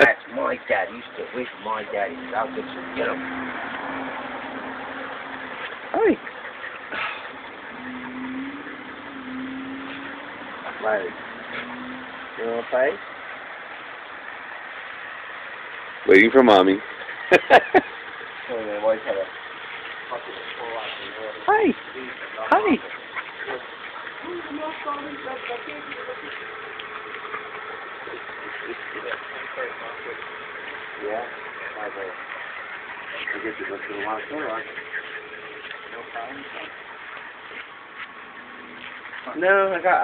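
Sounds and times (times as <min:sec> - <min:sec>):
car engine idling: 0:00.0 - 0:40.0.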